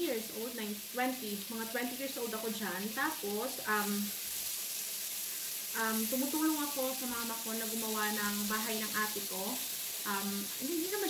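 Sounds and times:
meat sizzling on grill: 0.0 - 11.0.

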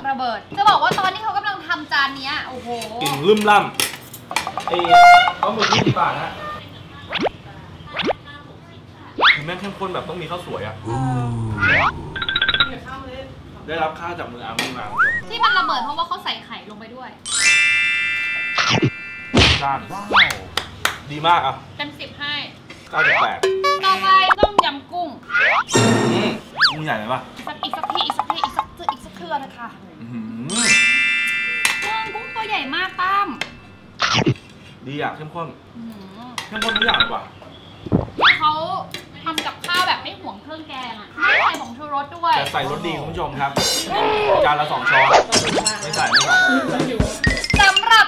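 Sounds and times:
person talking: 10.8 - 12.9
comic thunk: 19.4 - 19.8
cutlery clinking on plates: 45.3 - 48.0.

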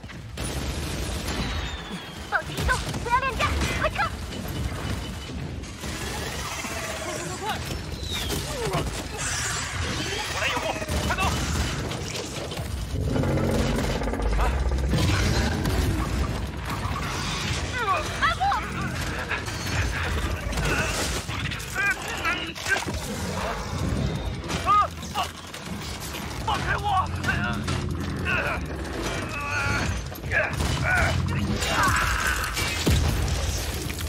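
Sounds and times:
mechanical whirs and creaks: 11.1 - 18.0
mech joints creaking and ratcheting: 11.7 - 17.4, 25.2 - 31.6.

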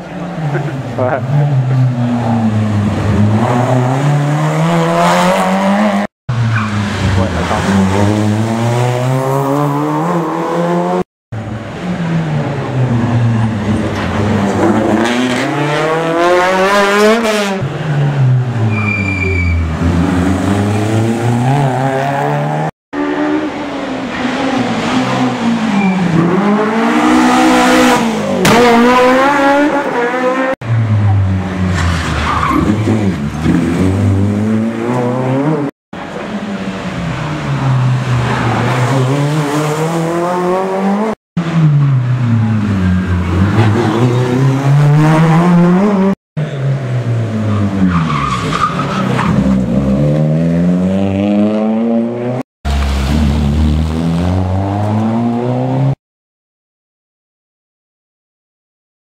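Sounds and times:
rally cars revving past: 12.3 - 18.6, 36.8 - 56.0.

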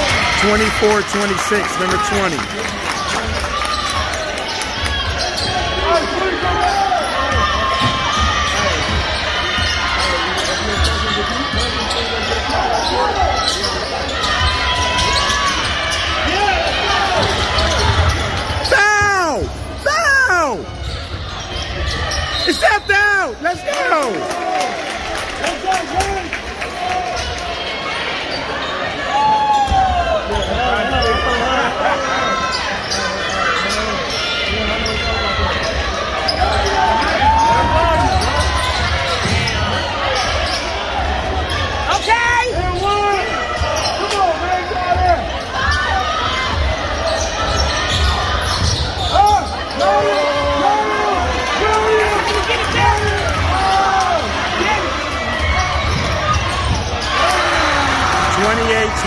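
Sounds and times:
voices in a gym: 0.0 - 59.0
sneaker squeaks: 3.6 - 16.3, 17.1 - 18.8, 20.4 - 23.0, 32.2 - 40.8, 42.7 - 50.5, 55.4 - 57.7.

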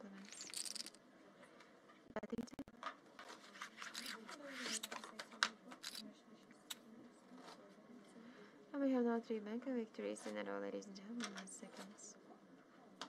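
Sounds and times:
faint voices: 0.0 - 13.0.

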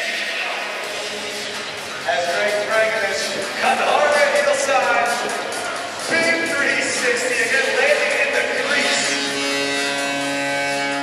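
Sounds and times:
steady buzzing tone: 8.6 - 11.0.

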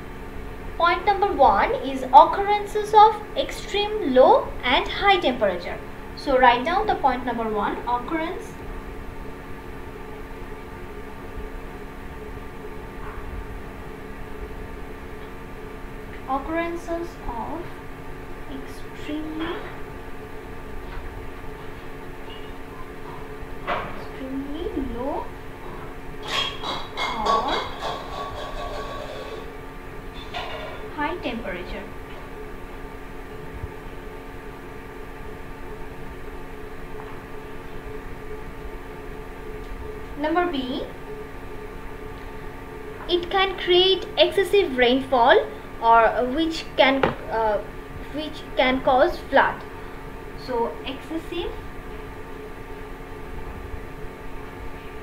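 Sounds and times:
faint steady hum tones: 0.0 - 55.0.

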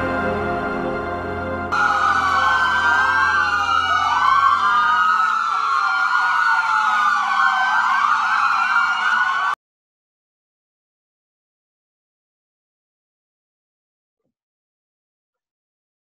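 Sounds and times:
police sirens wailing: 1.7 - 9.6.

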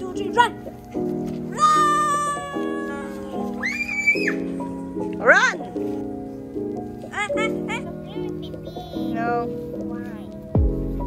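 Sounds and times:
background music held notes: 0.0 - 11.0
child shouting: 1.5 - 4.4.

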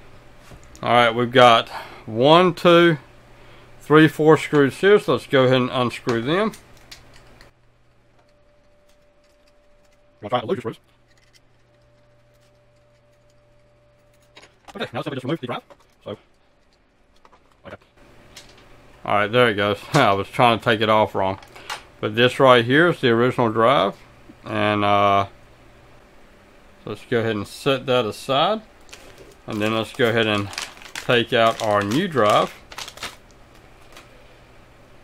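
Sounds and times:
plastic bag rustling: 28.8 - 34.1.

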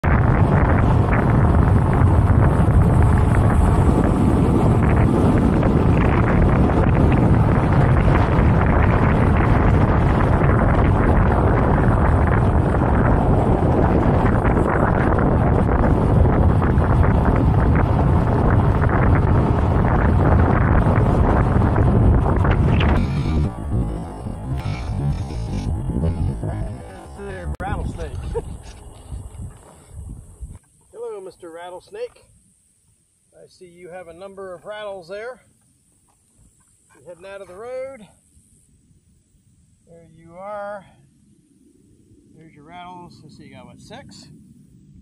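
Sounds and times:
wind buffeting microphone: 0.0 - 31.2.

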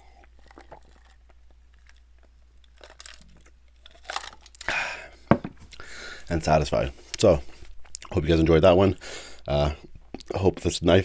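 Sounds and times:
person sipping and swallowing: 0.0 - 2.2.

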